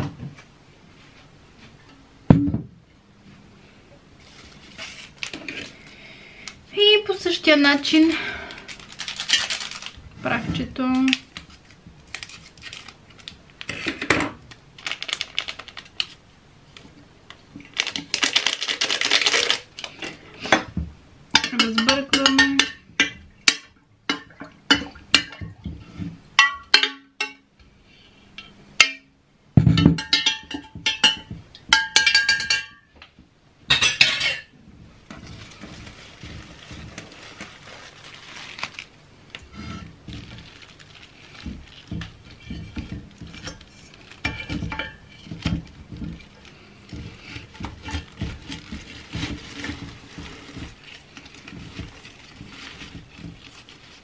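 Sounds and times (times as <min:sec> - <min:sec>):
plastic packet rustling: 0:07.5 - 0:13.8, 0:14.4 - 0:16.2, 0:17.6 - 0:20.0, 0:35.1 - 0:54.0
stirring water in glass vase: 0:35.1 - 0:37.8, 0:39.5 - 0:54.0.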